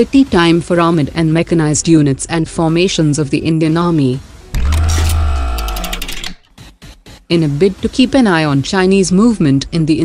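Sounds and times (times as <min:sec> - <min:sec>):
rapid ticking: 0:04.6 - 0:07.3.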